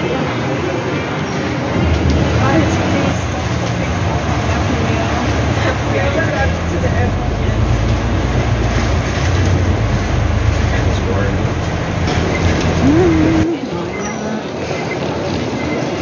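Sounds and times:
bus engine humming: 1.4 - 16.0
heavy rain on windows: 1.8 - 13.4.

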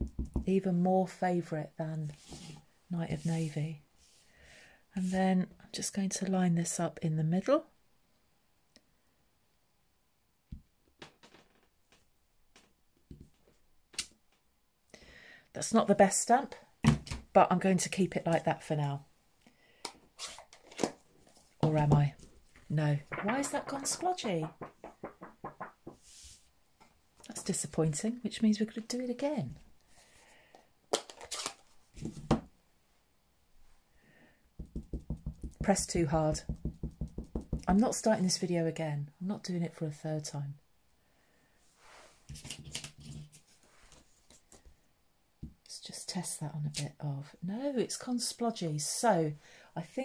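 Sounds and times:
paper rustling: 20.2 - 26.4
knock on desk: 23.1 - 26.0
small taps: 23.1 - 26.1.

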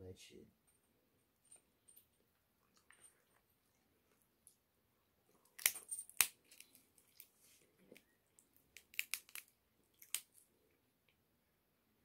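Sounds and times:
shellfish shell cracking: 5.3 - 10.4.

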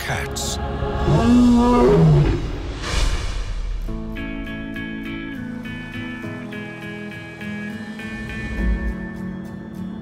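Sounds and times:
lion roaring: 1.0 - 2.7.

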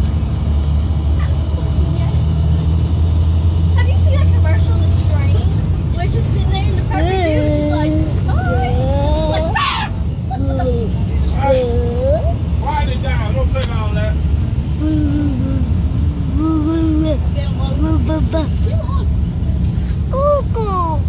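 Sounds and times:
bus engine and road noise: 0.0 - 21.0
wordless voices: 3.8 - 21.0.

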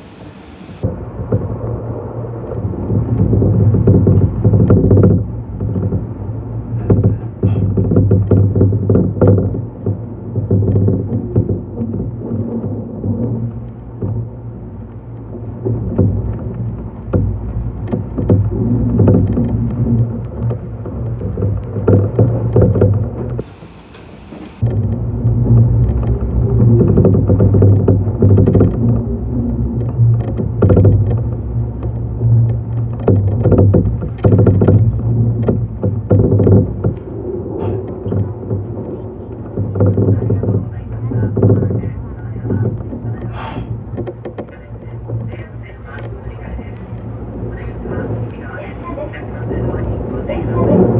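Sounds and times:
electric train rumble and hum: 0.0 - 50.9
wheels clicking on rails: 0.0 - 50.9.

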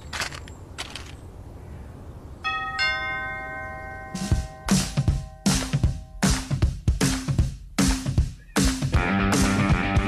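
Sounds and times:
brief rustling: 0.0 - 1.2
doorbell chime: 2.5 - 6.4.

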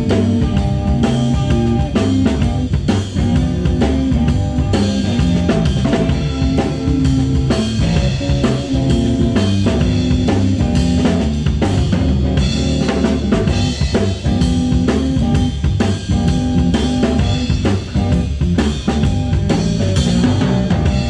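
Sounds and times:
bass line: 0.0 - 21.0
blues band playing: 0.0 - 21.0
drum kit beat: 0.0 - 21.0
electric guitar: 0.0 - 21.0.

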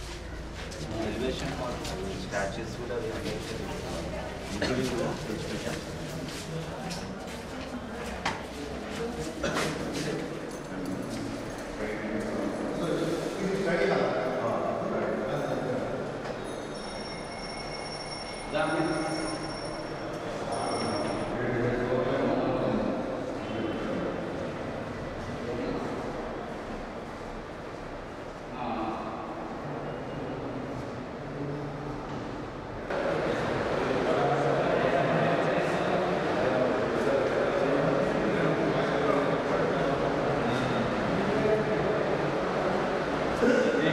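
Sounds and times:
men talking in a hall: 0.0 - 43.9.

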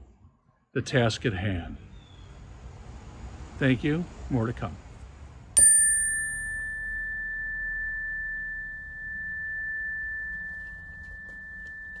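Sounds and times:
electronic chime tone: 5.6 - 12.0.

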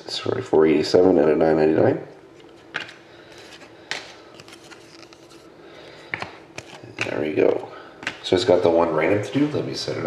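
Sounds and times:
cards rustling: 2.4 - 7.1
cards tapping and clicking: 6.1 - 7.2.

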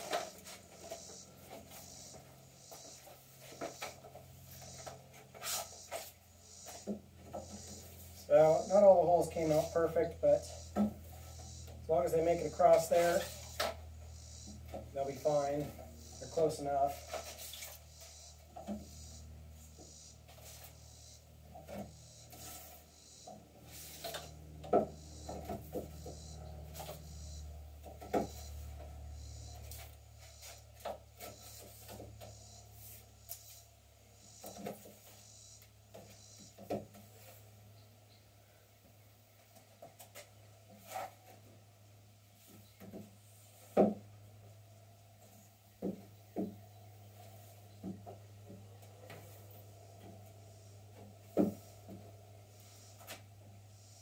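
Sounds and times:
low hum: 0.0 - 30.5.

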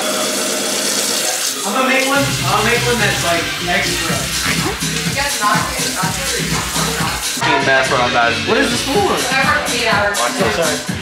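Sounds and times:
tap water pouring into sink: 0.0 - 7.4.

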